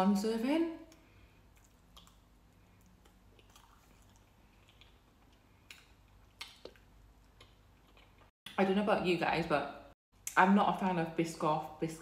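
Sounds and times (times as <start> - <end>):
soft chewing: 0.9 - 8.3.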